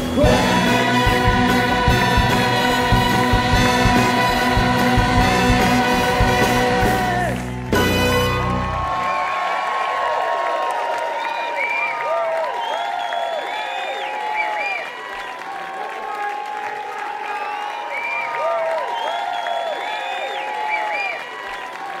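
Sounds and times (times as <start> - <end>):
audience applauding and cheering: 0.0 - 22.0.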